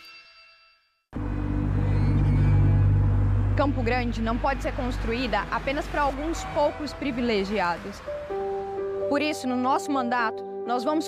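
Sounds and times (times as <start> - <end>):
wavering tone: 1.2 - 4.1
low rumbling drone: 1.2 - 6.3.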